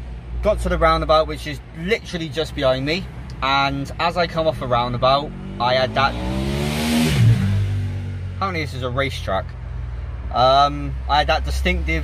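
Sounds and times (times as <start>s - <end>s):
car passing fast: 5.3s - 8.5s.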